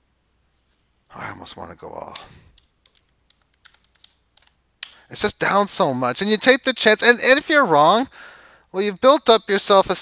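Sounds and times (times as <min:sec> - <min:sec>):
computer keyboard keystrokes: 0:02.1 - 0:05.0.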